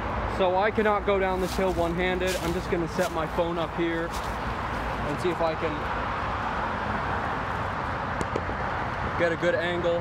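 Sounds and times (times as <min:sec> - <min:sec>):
highway traffic rumble: 0:00.0 - 0:10.0.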